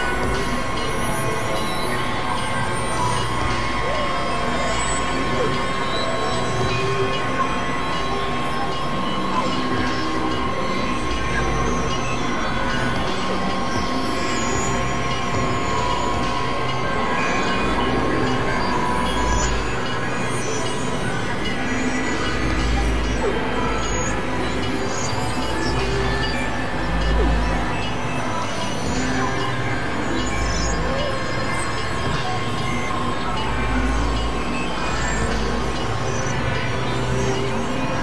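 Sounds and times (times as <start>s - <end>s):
electronic drone music: 0.0s - 38.0s.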